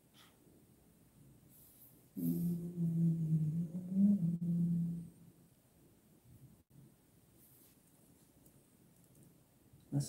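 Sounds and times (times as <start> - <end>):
man humming low: 2.2 - 5.3.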